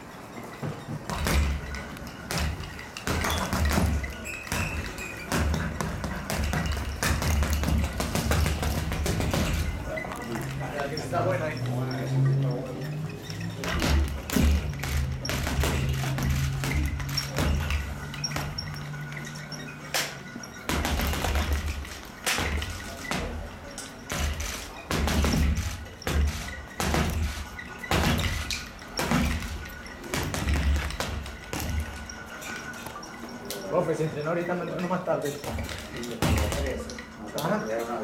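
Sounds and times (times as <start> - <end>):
gloves punching a punching bag: 1.1 - 9.9, 13.6 - 18.8, 20.7 - 23.5, 24.1 - 32.1.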